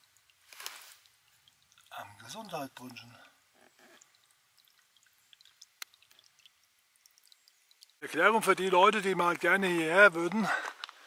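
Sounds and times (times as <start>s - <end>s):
water trickling and dripping from pipe: 0.0s - 11.0s.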